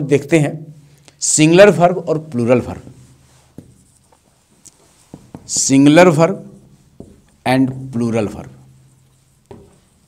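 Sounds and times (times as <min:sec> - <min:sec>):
marker writing on whiteboard: 0:02.3 - 0:10.0.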